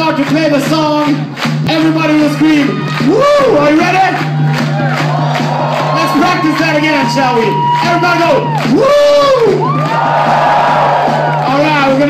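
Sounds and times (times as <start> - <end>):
crowd yelling and whooping: 2.0 - 12.0.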